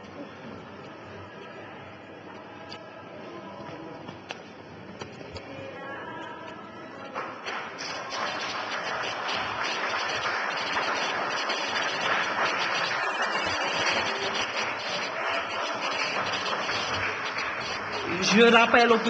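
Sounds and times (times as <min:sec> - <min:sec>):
crowd clapping and cheering: 0:07.2 - 0:19.0.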